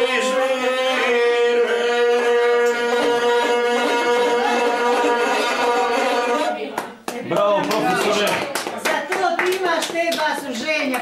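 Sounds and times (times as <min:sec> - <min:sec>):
people clapping unevenly: 0:02.6 - 0:11.0.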